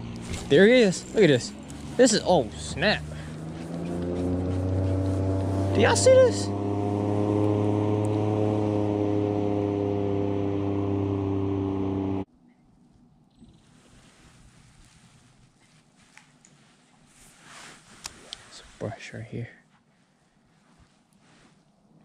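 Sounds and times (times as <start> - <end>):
boat motor running: 0.0 - 12.3.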